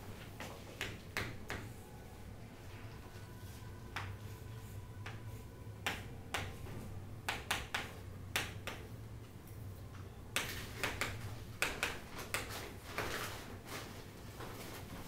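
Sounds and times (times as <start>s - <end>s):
chalk tapping on chalkboard: 0.4s - 1.8s, 5.0s - 8.9s, 10.4s - 12.7s.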